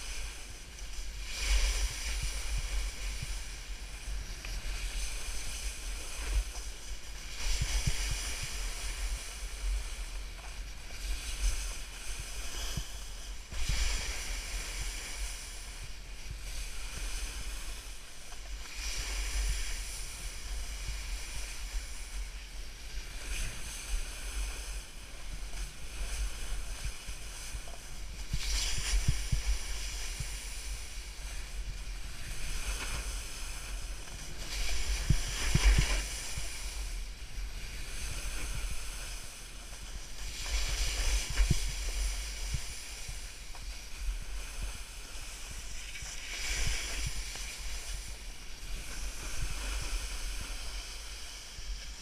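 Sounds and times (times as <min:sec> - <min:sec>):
snowboard sliding over snow: 0:00.0 - 0:52.0
wind rumbling on microphone: 0:00.0 - 0:52.0.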